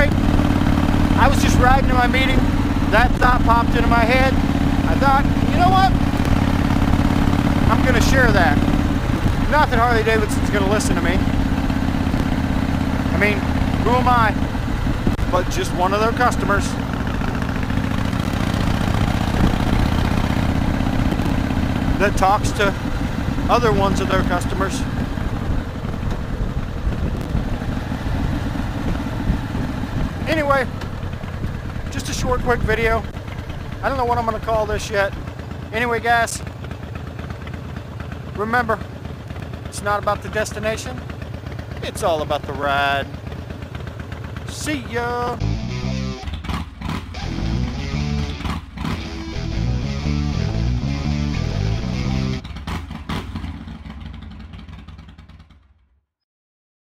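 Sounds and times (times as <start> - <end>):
motorcycle engine rumbling: 0.0 - 55.8.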